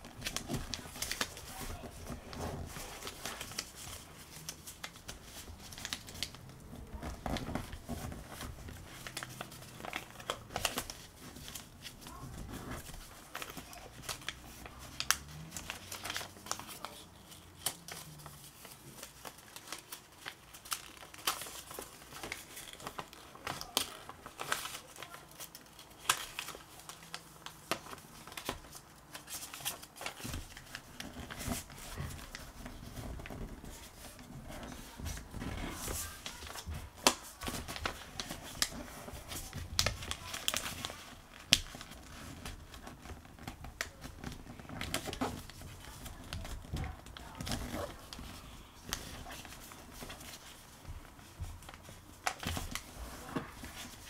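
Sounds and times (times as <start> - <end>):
paper rustling and crinkling: 0.0 - 54.0.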